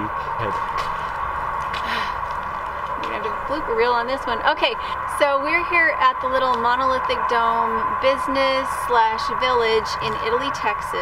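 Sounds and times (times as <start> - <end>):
constant hum: 0.0 - 11.0
steady low rumble: 0.0 - 11.0
woman's breathy exhale: 1.8 - 2.2.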